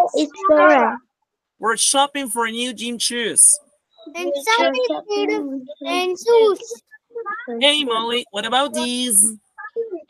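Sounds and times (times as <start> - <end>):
child reciting in sing-song voice: 0.0 - 1.0, 4.0 - 7.7, 8.7 - 10.0.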